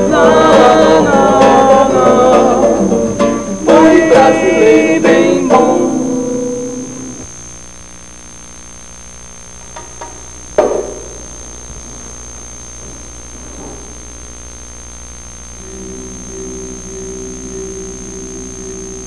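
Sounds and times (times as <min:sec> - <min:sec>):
strummed acoustic guitar chords: 0:00.0 - 0:07.2
sharp knock: 0:09.8 - 0:11.2.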